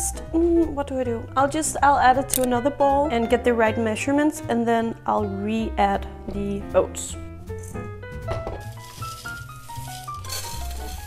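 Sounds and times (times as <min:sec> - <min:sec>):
background music: 0:00.0 - 0:11.0
oats pouring into a bowl: 0:08.6 - 0:11.0.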